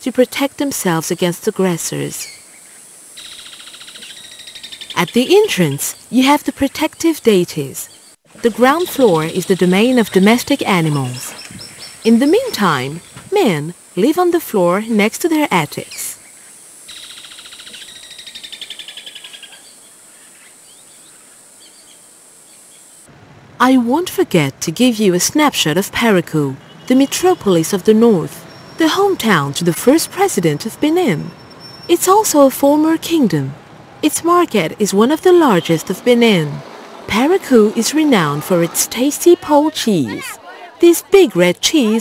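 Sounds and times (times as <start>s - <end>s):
insect trilling: 1.8s - 6.3s, 11.9s - 23.1s
faint bird chirps: 2.2s - 6.2s, 15.8s - 22.9s, 30.0s - 32.0s.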